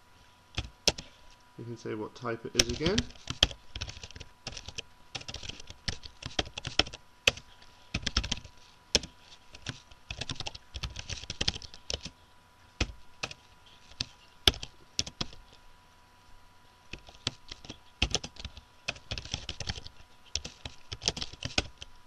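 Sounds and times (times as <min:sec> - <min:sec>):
computer keyboard typing: 0:00.6 - 0:01.0, 0:02.6 - 0:12.1, 0:12.8 - 0:15.5, 0:16.9 - 0:21.9.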